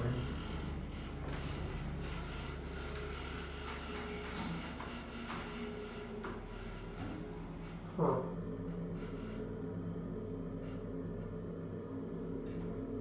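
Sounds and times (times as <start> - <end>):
elevator pump motor hum: 0.0 - 13.0.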